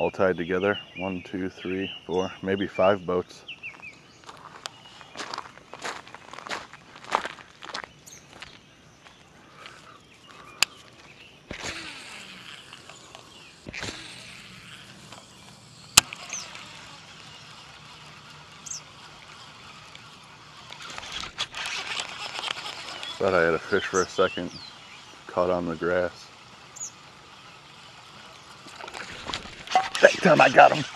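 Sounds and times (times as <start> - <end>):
bird chirps: 0.0 - 6.9, 7.8 - 20.9, 22.2 - 30.9
fishing rod and reel clicks: 11.5 - 30.9
lure churning water surface: 17.0 - 30.9.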